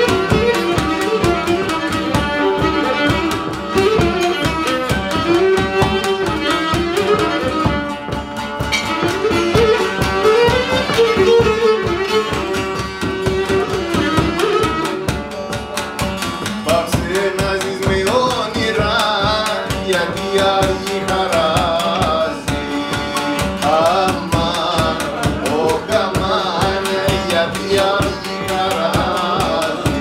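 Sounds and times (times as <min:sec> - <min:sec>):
barrel drum beaten with stick: 0:00.0 - 0:30.0
folk dance music on strings: 0:00.0 - 0:30.0
person singing: 0:16.6 - 0:30.0.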